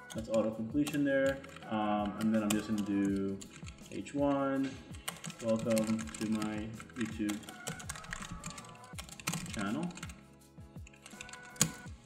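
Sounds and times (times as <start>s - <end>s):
background music with beat: 0.0s - 12.0s.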